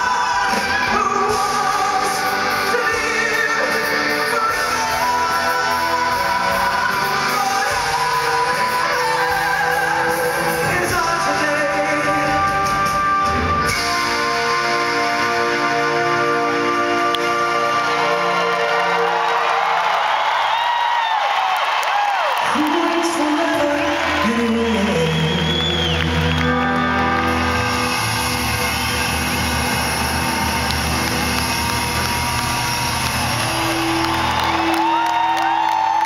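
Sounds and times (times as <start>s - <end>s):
crowd whooping and cheering: 0.0s - 11.4s, 13.7s - 36.0s
rock band sustained chords: 0.0s - 19.6s, 25.4s - 36.0s.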